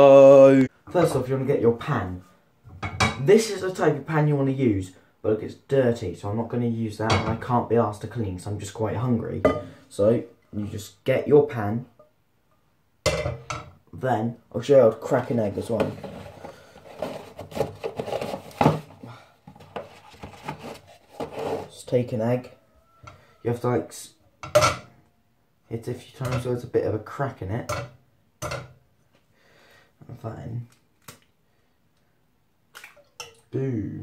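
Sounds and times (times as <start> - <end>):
kitchenware knocks and scrapes: 2.7 - 3.2, 9.4 - 9.9, 13.1 - 13.8, 15.6 - 21.7, 24.4 - 24.9.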